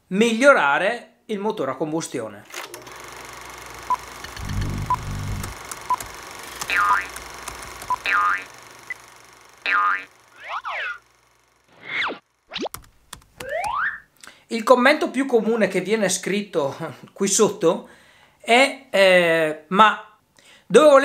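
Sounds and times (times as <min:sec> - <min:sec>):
springy cartoon boings: 0:06.7 - 0:07.1, 0:08.0 - 0:08.5, 0:09.6 - 0:11.0, 0:13.4 - 0:14.1.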